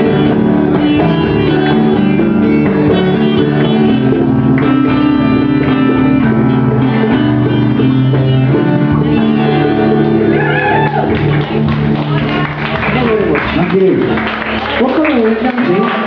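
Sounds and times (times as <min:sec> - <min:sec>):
strummed acoustic guitars: 0:00.0 - 0:14.6.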